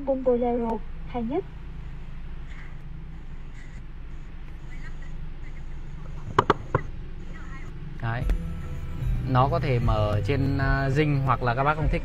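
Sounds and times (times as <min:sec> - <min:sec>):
car climate control hum: 0:00.0 - 0:12.0.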